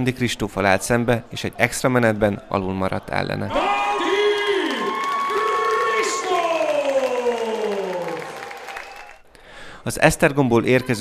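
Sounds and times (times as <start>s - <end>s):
crowd applause: 3.9s - 9.2s.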